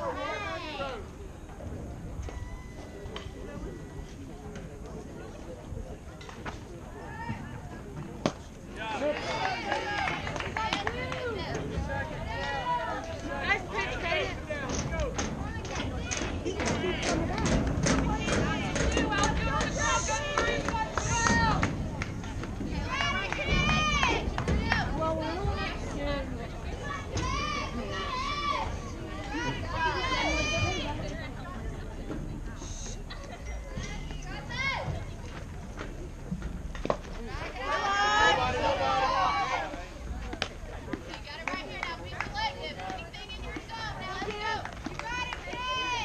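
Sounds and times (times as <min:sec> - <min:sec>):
players shouting calls and cheers: 0:00.0 - 0:31.3, 0:36.8 - 0:46.0.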